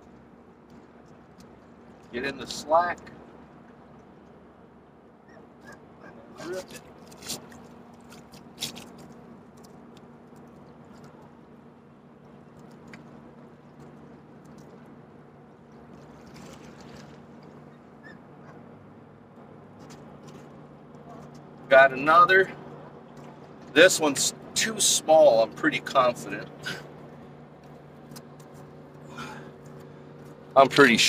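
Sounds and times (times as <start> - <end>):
steady low hum: 0.0 - 31.0
water splashes: 6.0 - 18.1, 19.6 - 31.0.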